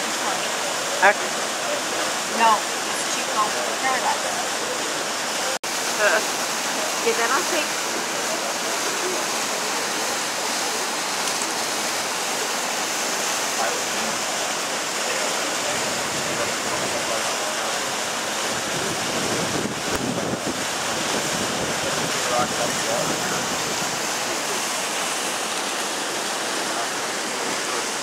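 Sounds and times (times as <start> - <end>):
river rushing through rapids: 0.0 - 28.0
wind buffeting microphone: 18.5 - 24.2.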